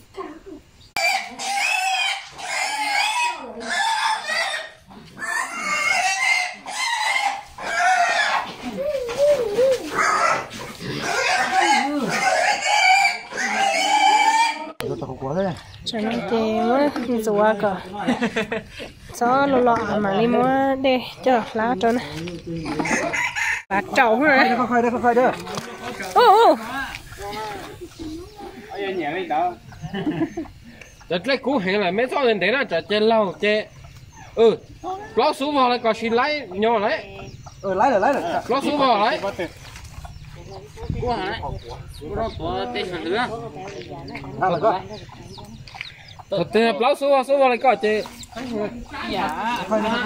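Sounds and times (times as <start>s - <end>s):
chickens crowing: 1.0s - 14.8s, 22.6s - 31.1s
farm animal squealing: 1.0s - 14.8s, 22.7s - 23.7s.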